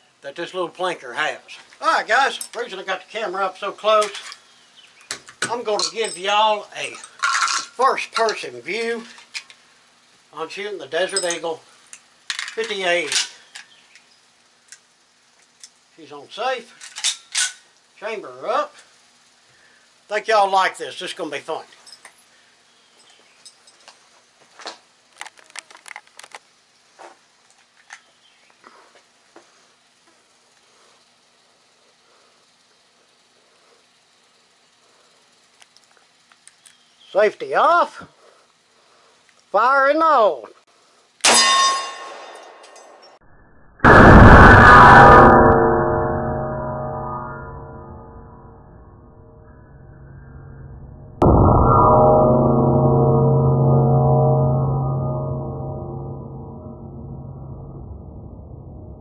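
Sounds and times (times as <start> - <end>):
struck metal ringing: 41.3 - 43.0, 43.9 - 59.0.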